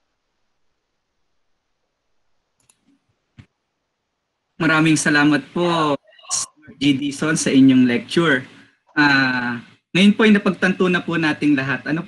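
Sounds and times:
faint clicks: 2.6 - 3.5.

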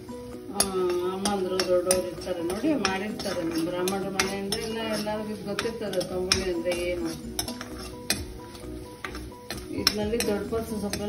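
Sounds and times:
light sizzle: 0.0 - 11.0
metal spoon stirring spices: 0.0 - 11.0
spoon clicking against pan: 0.6 - 11.0.

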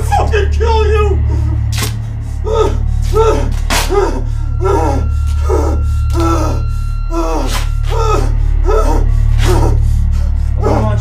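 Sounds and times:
steady low drone: 0.0 - 11.0
man's strained wordless cries: 0.1 - 11.0.

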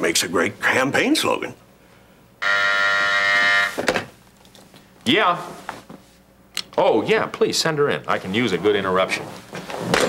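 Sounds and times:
intercom buzzer: 2.4 - 3.8.

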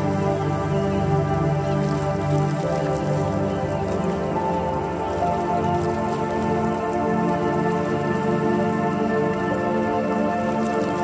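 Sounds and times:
ambient meditation music: 0.0 - 11.0.

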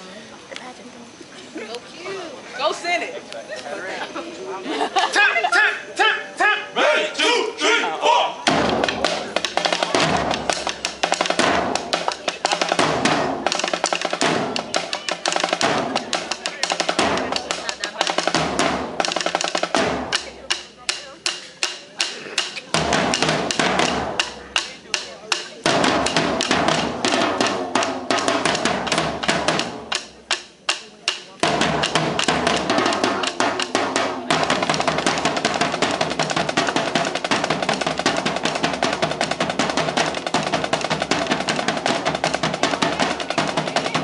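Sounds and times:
person shouting: 5.2 - 8.4
drumline playing fast beat: 8.4 - 44.0.

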